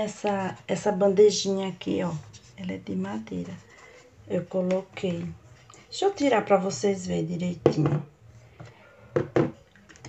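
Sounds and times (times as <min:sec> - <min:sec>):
knocks on wooden tray: 0:07.6 - 0:08.1, 0:09.2 - 0:09.6.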